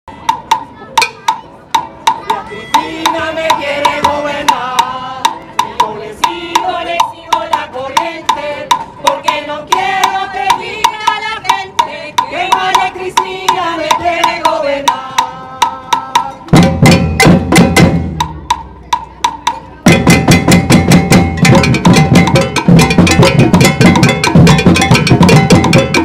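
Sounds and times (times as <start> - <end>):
voices: 0.1 - 16.6
percussion ensemble drumming: 0.1 - 26.0
wood-block clicking: 0.2 - 17.0.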